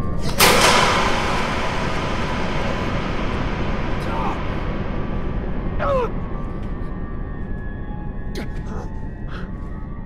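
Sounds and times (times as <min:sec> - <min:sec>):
low rumbling drone: 0:00.0 - 0:10.0.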